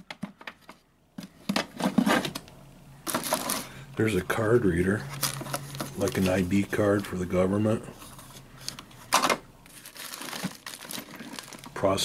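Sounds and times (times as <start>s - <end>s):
rustling in cardboard box: 1.2s - 2.4s, 5.1s - 7.0s, 9.7s - 11.7s
plastic crinkling: 3.0s - 3.8s, 5.0s - 7.4s, 8.0s - 12.0s.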